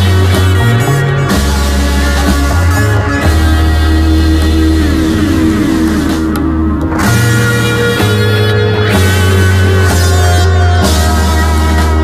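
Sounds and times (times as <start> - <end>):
held bass note: 0.0 - 12.0
instrumental hard rock: 0.0 - 12.0
sustained guitar tones: 0.0 - 12.0.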